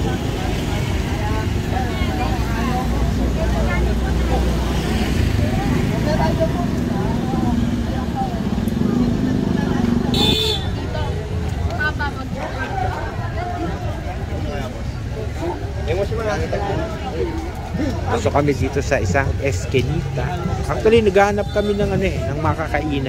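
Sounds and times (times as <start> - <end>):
crowd voices chattering: 0.0 - 23.0
passing cars and motorcycles: 0.0 - 23.0.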